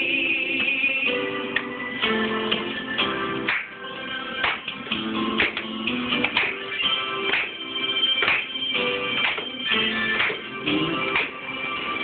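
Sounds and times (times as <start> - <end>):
group singing upbeat song: 0.0 - 1.4
hand claps on the beat: 3.4 - 3.8, 4.4 - 11.5.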